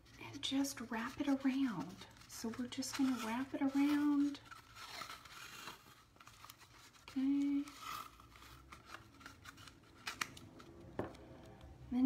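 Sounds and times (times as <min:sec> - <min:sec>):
tape rustling and ticking: 0:01.0 - 0:11.7.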